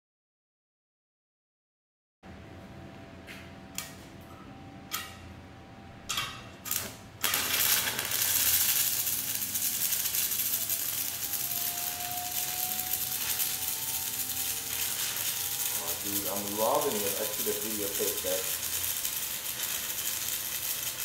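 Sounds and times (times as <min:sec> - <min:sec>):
welding arc crackling hiss: 0:06.1 - 0:21.0.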